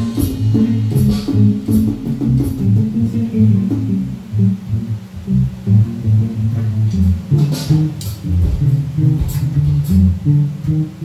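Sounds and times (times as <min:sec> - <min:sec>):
bass guitar playing low notes: 0:00.0 - 0:11.0.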